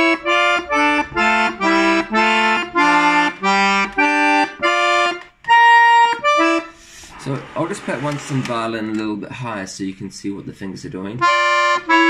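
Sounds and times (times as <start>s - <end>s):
accordion chords: 0.0s - 9.0s, 11.2s - 12.0s.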